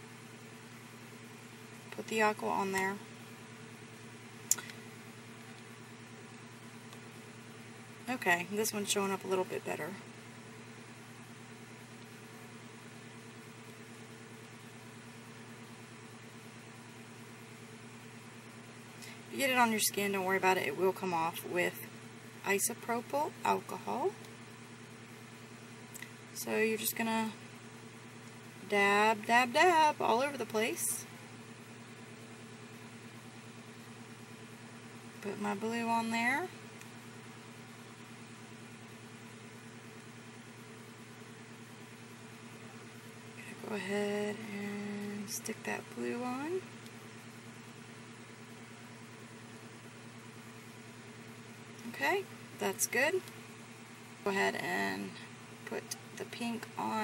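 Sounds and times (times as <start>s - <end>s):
background hum with hiss: 0.0s - 57.0s.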